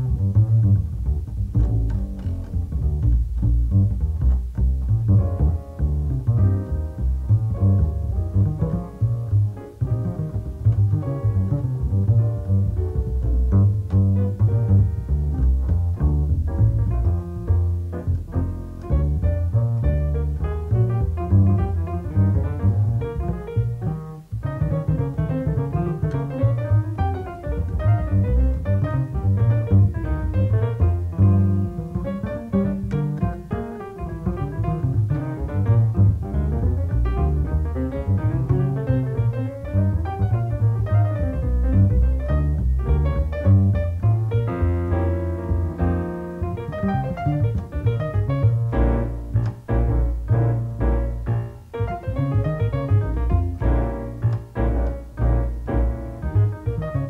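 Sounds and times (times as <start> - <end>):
jazz piano: 0.0 - 57.0
plucked double bass: 0.0 - 57.0.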